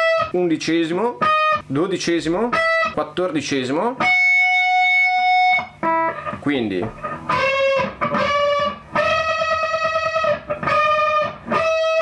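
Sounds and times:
electric guitar notes: 4.0s - 12.0s.

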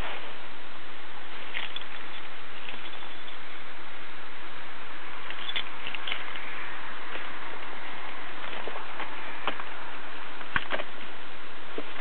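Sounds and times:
steady static hiss: 0.0s - 12.0s.

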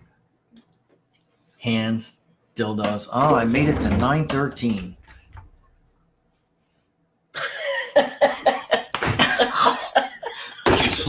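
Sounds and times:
person laughing hard: 7.4s - 10.9s.

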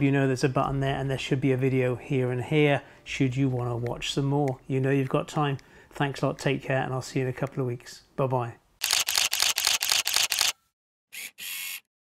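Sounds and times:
camera shutter clicks: 8.8s - 10.6s.

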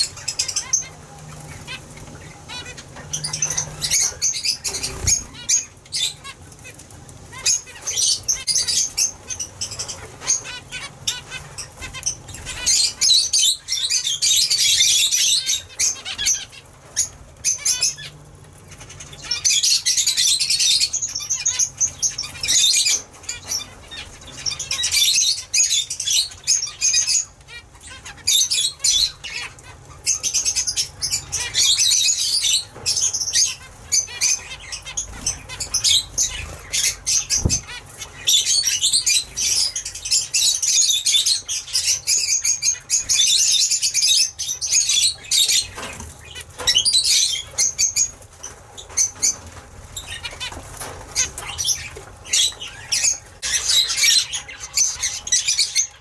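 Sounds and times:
wings fluttering: 0.0s - 25.0s, 32.7s - 39.8s
finches chattering: 0.0s - 49.4s.

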